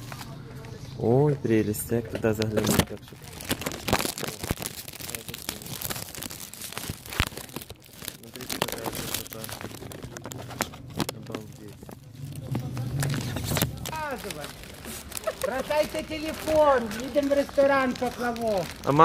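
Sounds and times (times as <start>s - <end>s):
cellophane crinkling: 2.2s - 19.0s.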